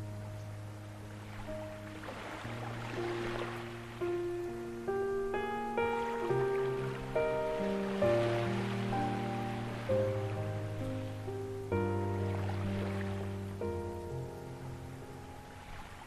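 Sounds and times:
ocean waves: 0:00.0 - 0:16.0
slow ambient piano: 0:00.0 - 0:16.0.

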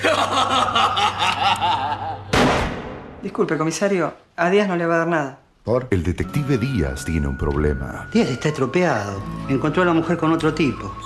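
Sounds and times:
person chuckling: 0:00.0 - 0:02.3.

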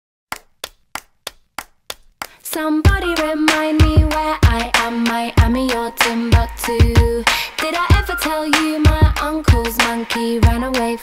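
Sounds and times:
sharp percussive hits: 0:02.9 - 0:11.0.

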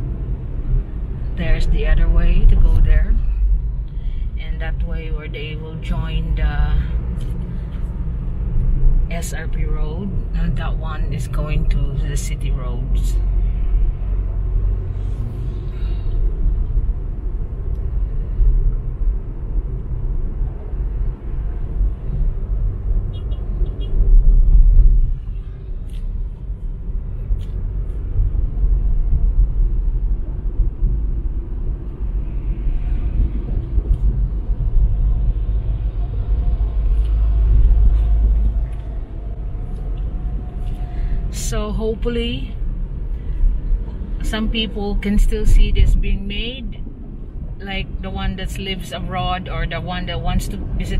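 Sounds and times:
road and engine rumble in car: 0:00.0 - 0:50.9.

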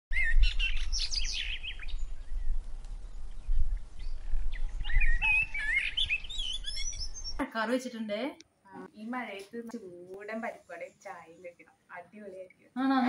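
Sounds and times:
small birds chirping: 0:00.1 - 0:07.6, 0:08.7 - 0:12.6.

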